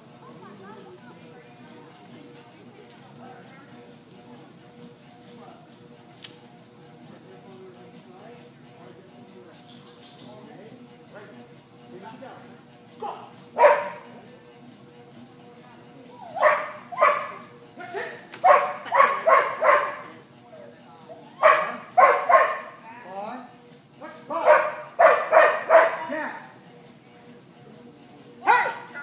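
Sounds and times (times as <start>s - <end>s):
dog barking: 13.6s - 14.1s, 16.3s - 17.4s, 18.4s - 20.2s, 21.4s - 22.8s, 24.4s - 26.1s, 28.4s - 29.0s.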